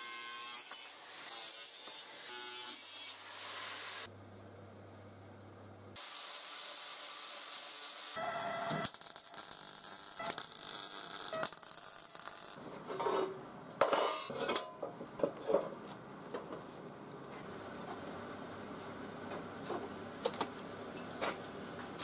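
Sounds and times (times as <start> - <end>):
welder crackling: 6.0 - 12.6.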